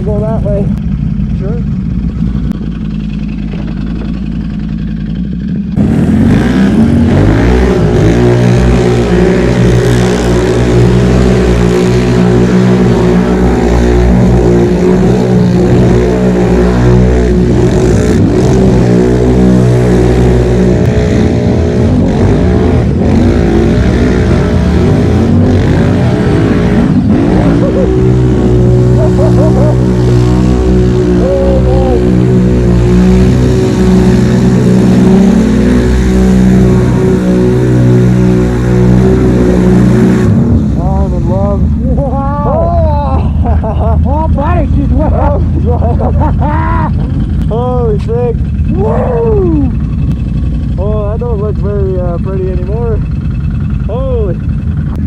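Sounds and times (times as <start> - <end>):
atv engine revving: 0.0 - 55.0
vehicle churning through mud: 1.4 - 55.0.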